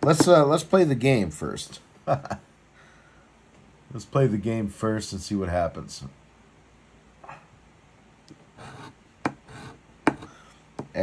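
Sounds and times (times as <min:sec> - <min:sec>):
coin scratching lottery ticket: 0:08.6 - 0:10.3.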